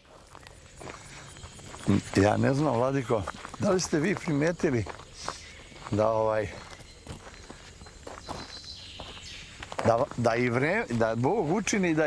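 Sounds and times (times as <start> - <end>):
footsteps of people walking: 0.0 - 12.0.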